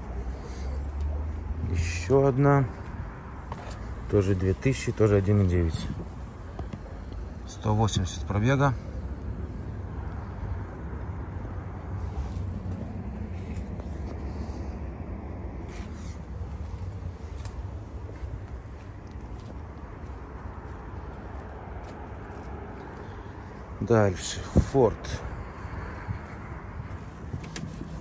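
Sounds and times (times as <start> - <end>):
footsteps on concrete: 2.8 - 4.0, 15.6 - 23.0.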